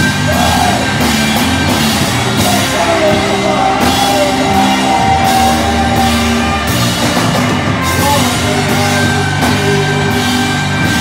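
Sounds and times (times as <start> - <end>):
drum kit with cymbals: 0.0 - 11.0
electric guitars: 0.0 - 11.0.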